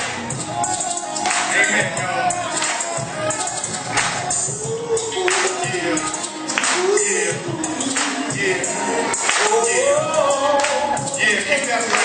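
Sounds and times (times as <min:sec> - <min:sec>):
backing track with percussion: 0:00.0 - 0:12.0
person singing into microphone: 0:01.0 - 0:12.0.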